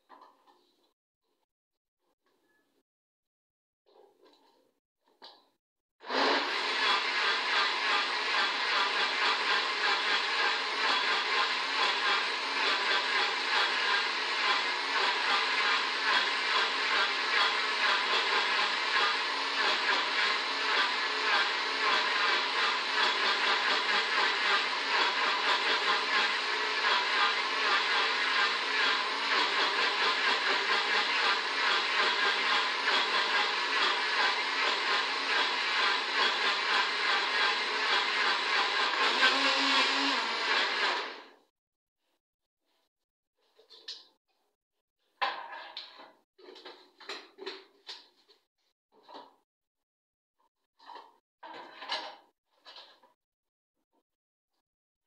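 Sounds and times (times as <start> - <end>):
blender running: 6.0 - 41.4.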